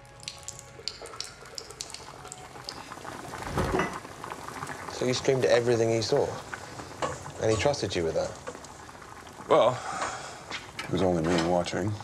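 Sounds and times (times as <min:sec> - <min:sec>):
urine splashing into urinal: 0:00.0 - 0:06.7.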